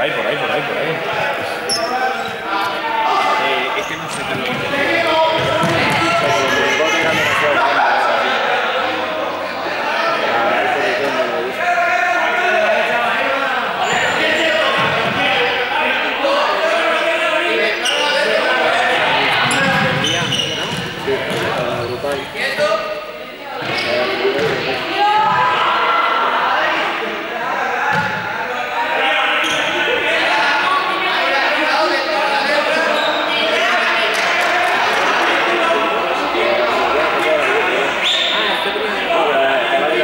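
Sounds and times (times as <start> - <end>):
students talking and calling: 0.0 - 40.0
running feet on court floor: 3.9 - 7.3, 19.2 - 22.4
ball bouncing on court floor: 5.3 - 6.1, 19.4 - 21.8, 24.4 - 24.6.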